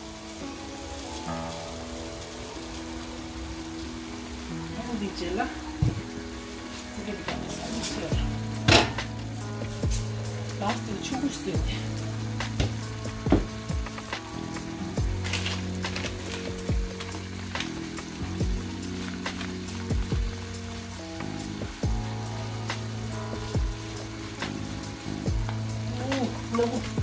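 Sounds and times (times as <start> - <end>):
food sizzling in a pan: 0.0 - 27.0
sharp pops and clicks: 12.4 - 21.8.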